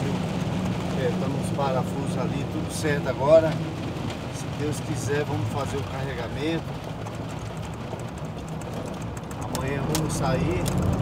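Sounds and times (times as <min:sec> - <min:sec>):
engine hum: 0:00.0 - 0:11.0
raindrops ticking on windshield: 0:00.0 - 0:11.0.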